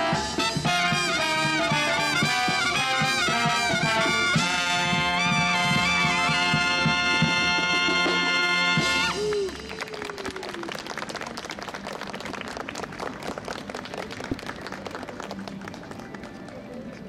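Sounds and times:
brass band final chord: 0:00.0 - 0:09.2
audience clapping: 0:09.0 - 0:17.0.

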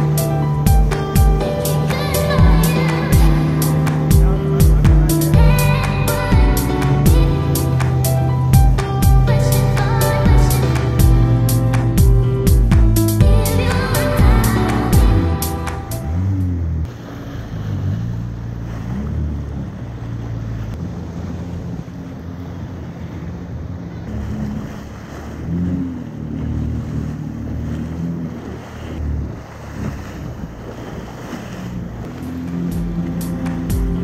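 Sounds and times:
water spray rushing: 0:00.0 - 0:23.4, 0:24.0 - 0:34.0
jet ski engine: 0:00.0 - 0:34.0.

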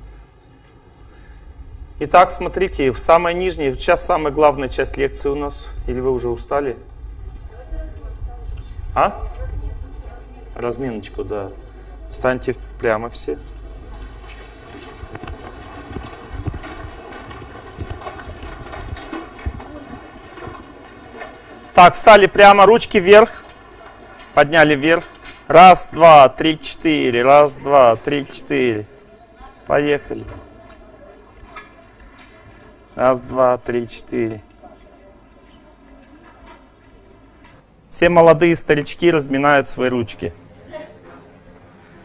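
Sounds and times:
faint steady low hum: 0:00.0 - 0:42.0
shuffling feet: 0:07.2 - 0:33.0
chairs shifting: 0:10.6 - 0:37.7
clothing rustling: 0:12.8 - 0:26.3
knocks and thumps: 0:14.1 - 0:21.9.

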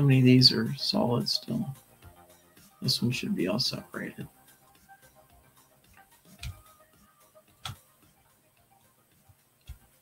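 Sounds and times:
faint background music: 0:00.0 - 0:10.0
computer mouse clicks: 0:06.3 - 0:06.6, 0:07.6 - 0:07.8, 0:09.6 - 0:09.9.

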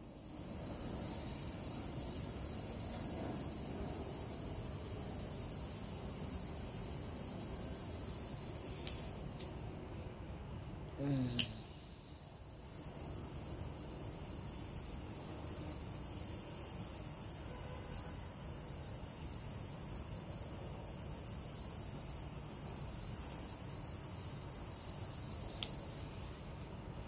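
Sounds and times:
torch lighter flame hissing: 0:00.0 - 0:09.8, 0:11.1 - 0:27.0
sharp lighter click: 0:08.8 - 0:09.6, 0:11.3 - 0:11.8, 0:25.5 - 0:25.9.

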